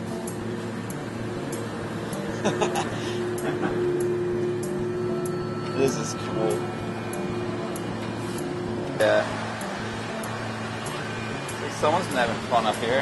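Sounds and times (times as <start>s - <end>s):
air conditioning machinery hum: 0.0s - 13.0s
held tone: 2.4s - 12.2s.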